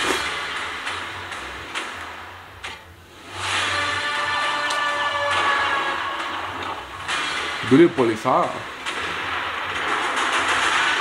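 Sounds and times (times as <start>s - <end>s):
dramatic trailer score: 0.0s - 11.0s
sharp hits: 0.0s - 11.0s.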